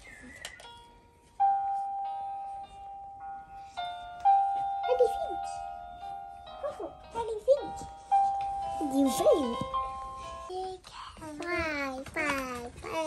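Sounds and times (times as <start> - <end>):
chiming electronic lullaby: 0.3 - 10.5.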